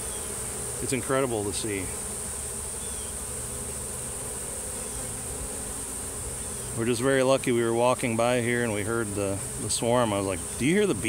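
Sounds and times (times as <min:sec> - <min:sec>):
bee swarm buzzing: 0:00.0 - 0:11.0.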